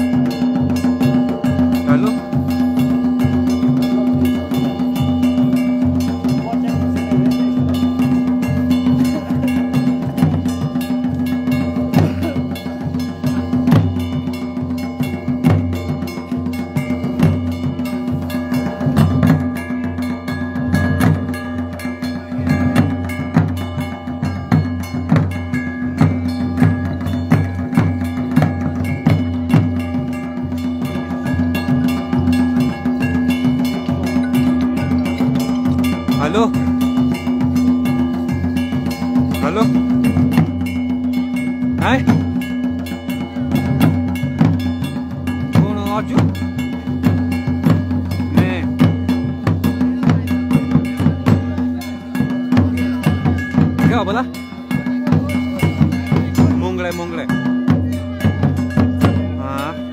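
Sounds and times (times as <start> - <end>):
barrel drums beating: 0.0 - 59.9.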